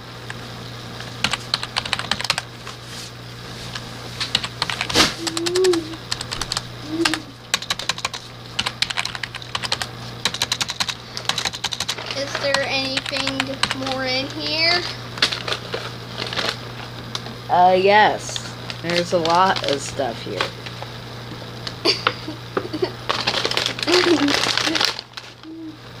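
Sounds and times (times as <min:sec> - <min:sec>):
rummaging through plastic wrappers: 0:15.2 - 0:16.6, 0:18.7 - 0:20.8, 0:23.0 - 0:25.6.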